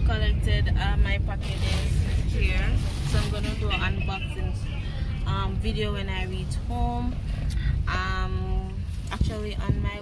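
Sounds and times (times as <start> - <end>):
car cabin rumble: 0.0 - 10.0
woman talking: 0.0 - 10.0.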